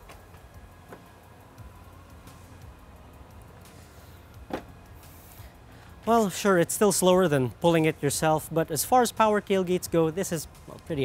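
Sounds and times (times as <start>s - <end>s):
electric motor humming: 0.0s - 6.1s.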